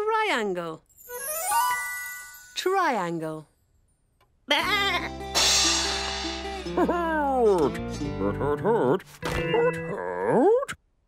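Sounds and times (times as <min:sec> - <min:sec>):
background music: 0:04.6 - 0:10.4
cartoon character vocalizations: 0:06.8 - 0:10.8.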